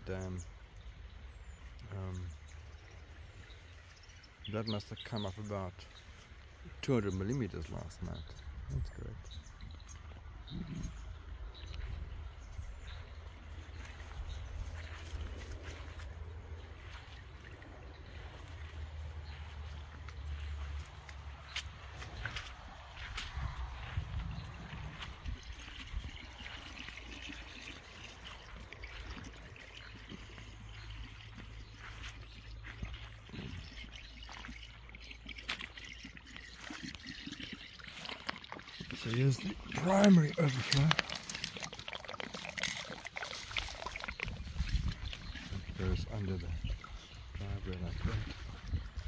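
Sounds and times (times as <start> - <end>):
rainwater trickling and dripping: 0.0 - 49.0
low rumble on microphone: 6.6 - 34.7, 44.1 - 49.0
footsteps on wet grass: 11.6 - 34.8, 37.8 - 49.0.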